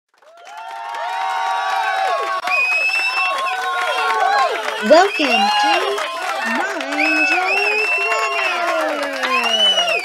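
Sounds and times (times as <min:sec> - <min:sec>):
crowd cheering: 0:00.1 - 0:10.0.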